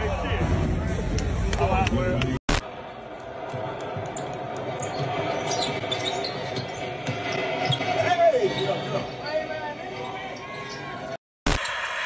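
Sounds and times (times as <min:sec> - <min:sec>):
arena noise: 0:00.0 - 0:12.0
sneaker squeaks: 0:04.8 - 0:09.2.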